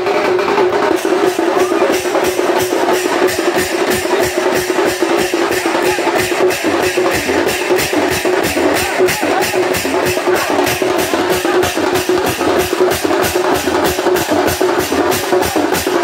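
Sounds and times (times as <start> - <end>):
drums beating fast rhythm: 0.0 - 16.0.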